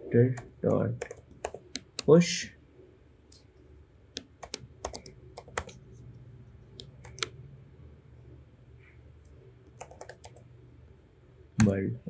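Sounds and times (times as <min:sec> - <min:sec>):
typing on computer keyboard: 0:00.3 - 0:02.1, 0:04.2 - 0:05.8, 0:06.8 - 0:07.3, 0:09.8 - 0:10.5.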